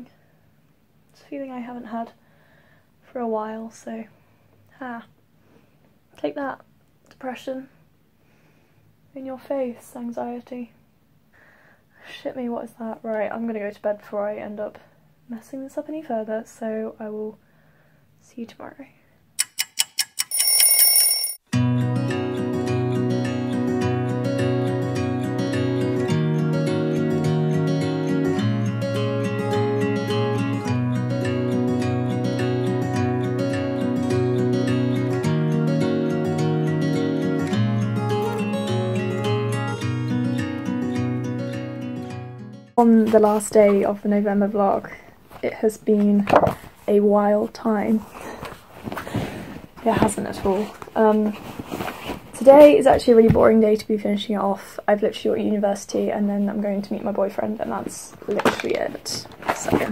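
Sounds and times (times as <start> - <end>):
alarm clock bell ringing: 20.2 - 21.4
acoustic guitar music: 21.5 - 44.0
notebook rustling: 48.0 - 52.5, 58.3 - 59.9.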